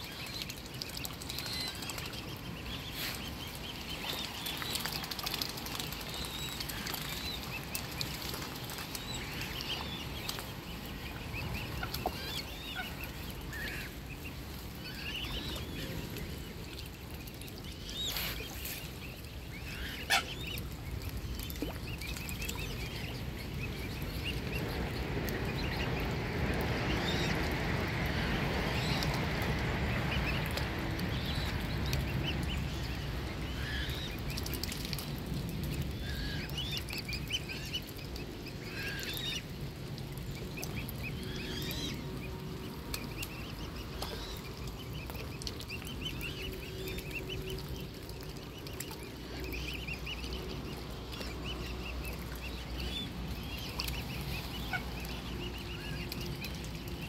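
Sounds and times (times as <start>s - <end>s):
cygnets peeping: 0.0s - 39.5s, 40.3s - 57.0s.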